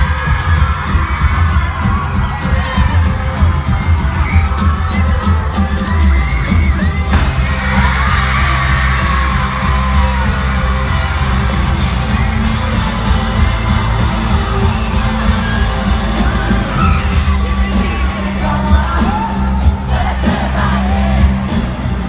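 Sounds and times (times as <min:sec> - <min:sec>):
fans screaming: 0:00.0 - 0:22.0
live pop-rock band: 0:00.0 - 0:22.0.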